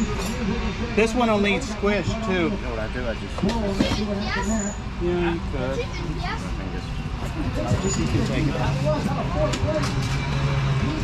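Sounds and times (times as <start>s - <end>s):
people talking indistinctly: 0.0s - 10.1s.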